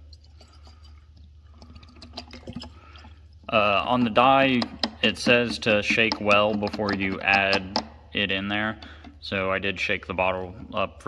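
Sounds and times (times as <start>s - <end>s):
liquid trickling into a tank: 0.0s - 5.1s.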